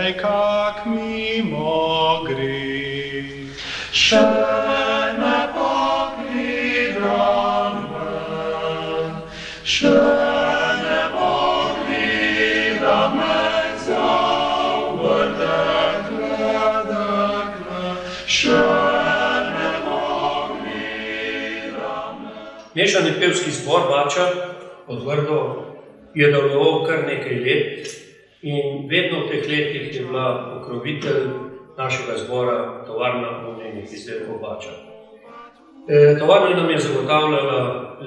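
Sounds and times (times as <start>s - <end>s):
male choir singing a cappella: 0.0s - 23.2s, 34.6s - 37.1s.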